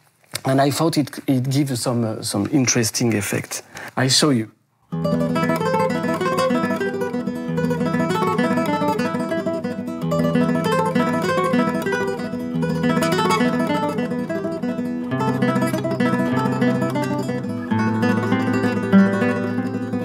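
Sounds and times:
classical guitar tremolo: 4.9s - 20.0s.

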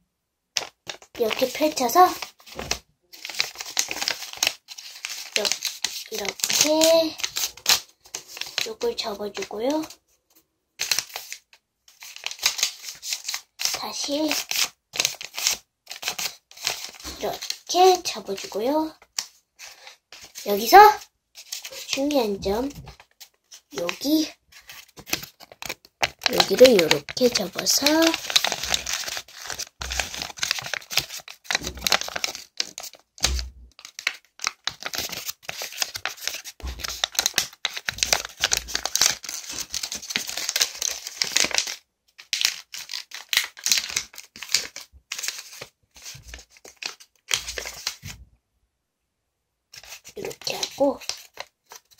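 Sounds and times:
paper rustling and crinkling: 0.6s - 9.9s, 10.8s - 48.2s, 49.8s - 51.9s.

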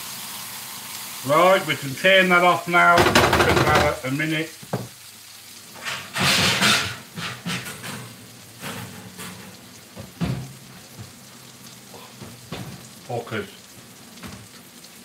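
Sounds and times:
mushrooms sizzling in a wok: 0.0s - 15.0s.

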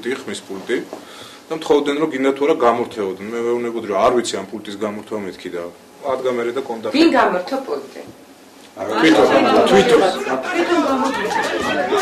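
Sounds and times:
people chattering: 8.8s - 12.0s.

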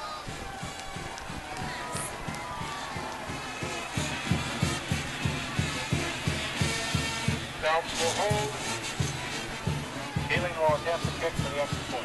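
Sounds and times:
drum beating steadily: 0.0s - 12.0s
stadium crowd noise: 0.0s - 12.0s.

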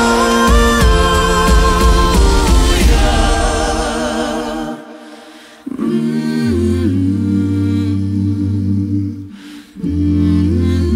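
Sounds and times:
deep bass voice: 0.0s - 4.7s
vocal group singing chord: 0.0s - 10.9s.

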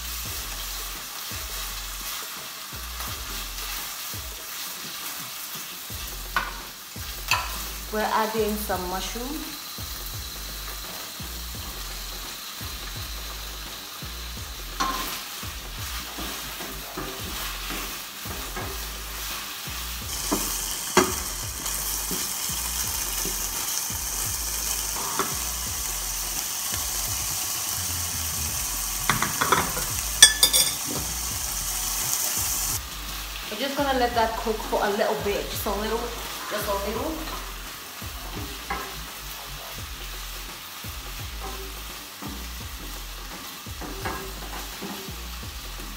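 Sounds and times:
food sizzling in a frying pan: 0.0s - 45.9s.

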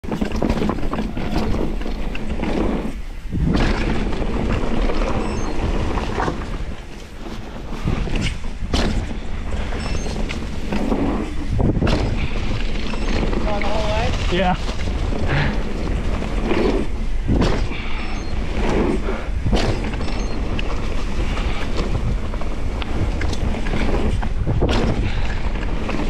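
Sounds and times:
bike rattling over ground: 0.0s - 26.0s
bike tyre and wind noise: 0.0s - 26.0s
bike landing thud: 7.9s - 10.5s, 11.4s - 12.7s, 17.3s - 18.0s, 19.4s - 20.0s, 24.1s - 25.4s.

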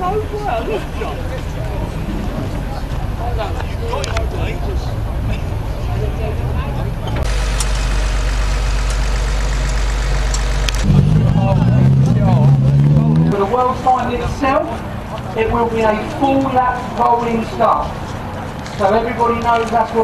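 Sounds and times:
voices: 0.0s - 7.3s, 10.2s - 20.0s
car engines running: 0.0s - 20.0s.

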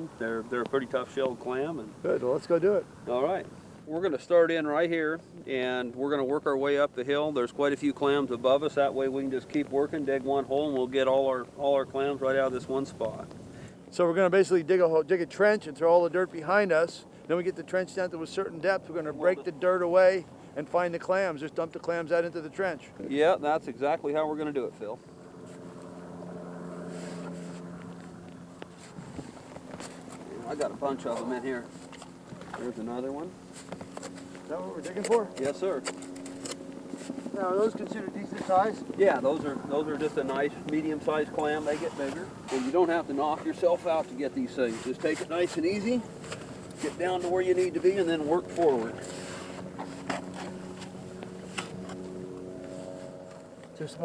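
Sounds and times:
engine drone: 23.7s - 54.0s.

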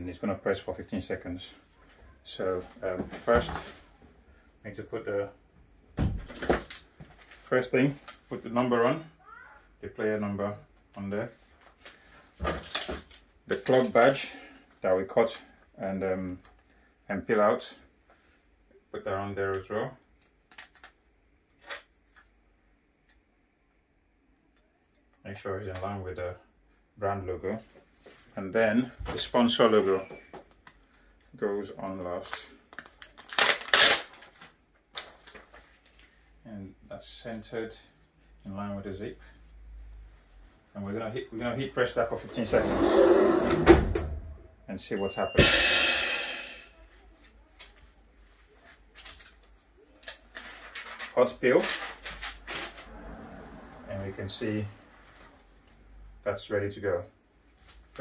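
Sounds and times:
faint steady hum: 0.0s - 58.0s.

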